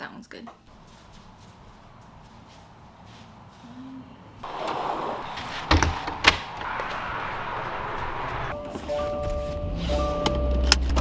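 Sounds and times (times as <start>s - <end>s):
steady rushing noise: 4.4s - 8.6s
steady tones: 4.4s - 8.7s.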